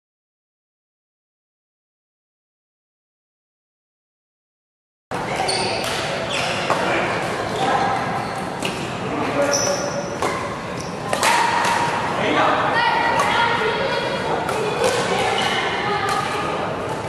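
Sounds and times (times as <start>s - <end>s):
rackets hitting shuttlecock: 5.2s - 6.9s, 9.9s - 12.1s, 13.1s - 13.5s, 14.4s - 17.0s
players' voices: 5.2s - 17.0s.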